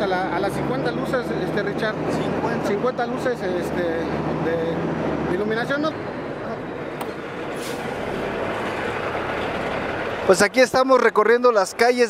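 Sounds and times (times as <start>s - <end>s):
truck engine and road noise: 0.0s - 12.0s
short air hiss: 7.5s - 8.0s.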